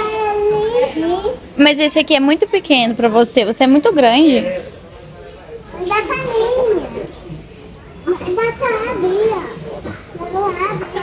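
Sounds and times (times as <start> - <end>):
young child talking: 0.0 - 1.5, 5.8 - 7.1, 8.1 - 11.0.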